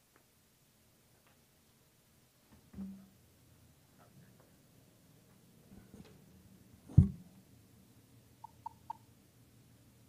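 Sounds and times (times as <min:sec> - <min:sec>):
loud low thump: 0:06.9 - 0:07.2.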